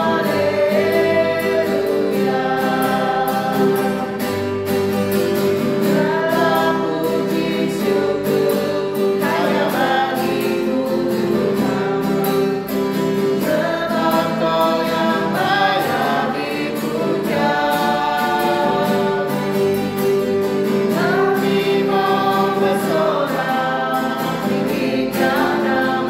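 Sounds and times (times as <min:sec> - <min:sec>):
voices singing together: 0:00.0 - 0:26.0.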